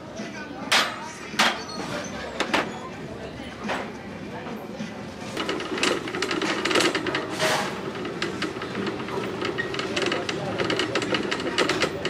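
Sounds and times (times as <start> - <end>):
shopping cart rattling: 5.2 - 12.0.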